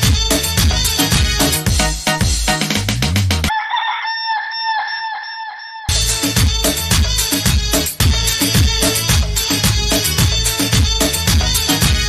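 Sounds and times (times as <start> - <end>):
dance beat: 0.0 - 3.5, 5.9 - 12.0
chicken sound effect: 3.5 - 6.0.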